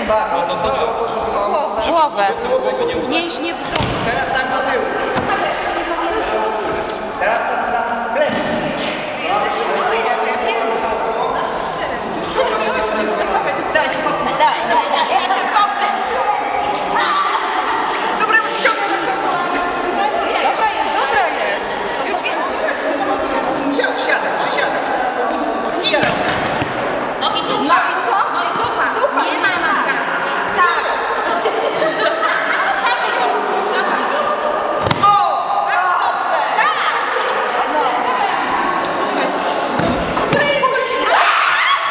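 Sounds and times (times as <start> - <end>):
voices talking in echoing hall: 0.0 - 41.9
sharp thud: 34.8 - 35.2.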